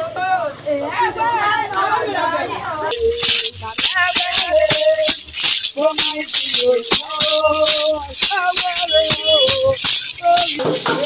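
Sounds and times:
women singing: 0:00.7 - 0:11.0
gourd rattles shaken: 0:02.9 - 0:11.0.

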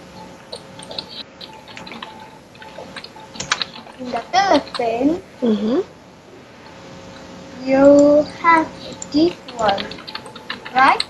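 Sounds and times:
child making wordless sounds: 0:07.6 - 0:09.9
computer keyboard clicks: 0:08.9 - 0:11.0.

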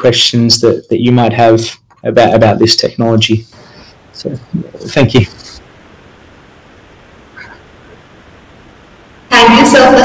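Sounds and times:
video call line hiss: 0:00.0 - 0:10.0.

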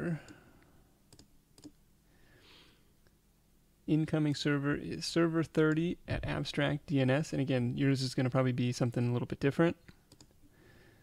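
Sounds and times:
computer mouse clicks: 0:01.1 - 0:01.8, 0:10.1 - 0:10.4.

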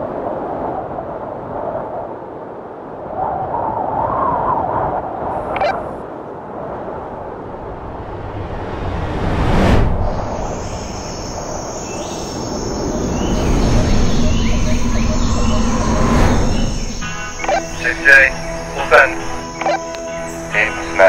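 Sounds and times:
wind-like rush: 0:00.0 - 0:21.0
whoosh: 0:07.6 - 0:17.6
high insect buzzing: 0:10.1 - 0:21.0.

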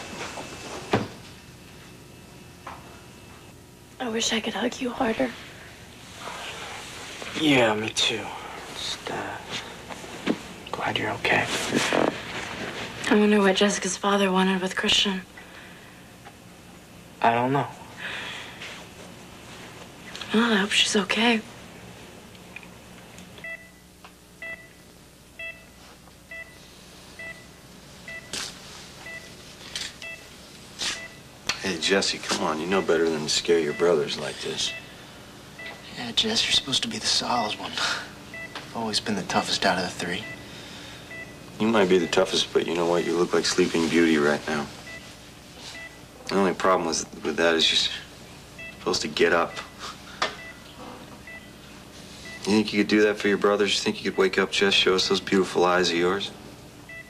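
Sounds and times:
breathy hiss: 0:05.2 - 0:07.4, 0:08.1 - 0:10.0, 0:17.8 - 0:18.9, 0:40.4 - 0:41.2
patient monitor beeping: 0:23.4 - 0:43.4, 0:44.0 - 0:46.7, 0:48.5 - 0:55.2.

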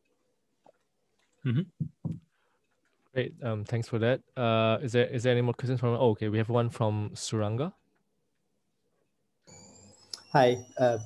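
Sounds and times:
faint microphone hiss with high tones: 0:09.4 - 0:11.0.

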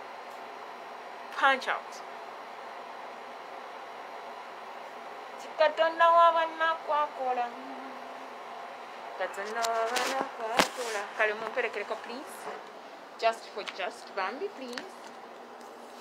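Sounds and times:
room noise hum: 0:00.0 - 0:16.0
woman's voice: 0:01.3 - 0:02.1, 0:05.4 - 0:07.8, 0:09.2 - 0:15.1.

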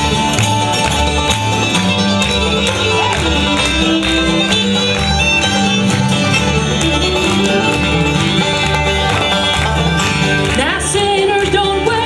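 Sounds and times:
acoustic guitar: 0:00.0 - 0:12.0
banjo: 0:00.0 - 0:12.0
fiddle: 0:00.0 - 0:12.0
mandolin: 0:00.0 - 0:12.0
upright bass: 0:00.0 - 0:12.0
person singing: 0:10.5 - 0:12.0.

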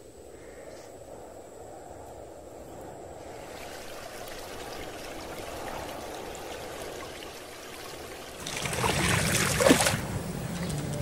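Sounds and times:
trickling water: 0:03.2 - 0:11.0.

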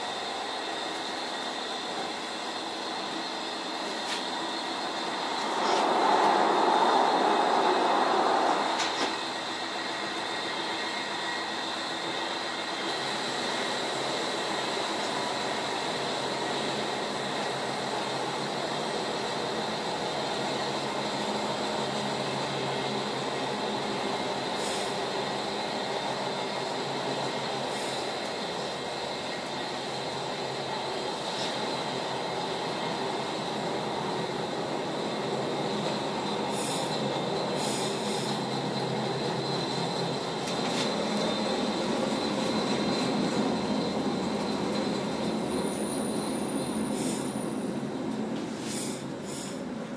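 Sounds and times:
high whine: 0:00.0 - 0:18.6
train wheels rumbling on rail: 0:00.0 - 0:49.9.

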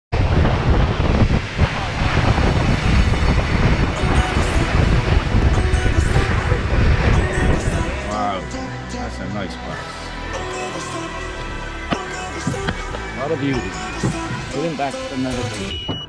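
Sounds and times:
wind buffeting microphone: 0:00.1 - 0:08.1
water rushing along boat hull: 0:00.1 - 0:15.9.

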